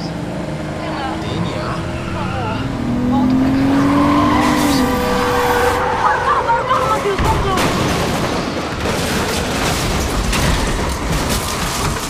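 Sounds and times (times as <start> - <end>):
car engine revving: 0.0 - 6.9.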